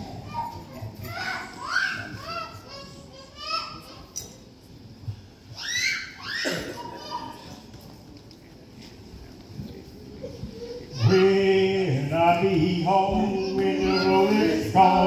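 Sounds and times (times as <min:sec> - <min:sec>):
young child squealing: 0:05.6 - 0:07.5.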